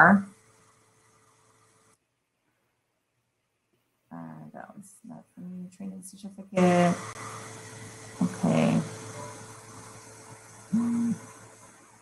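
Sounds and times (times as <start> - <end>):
woman humming: 10.7 - 11.3.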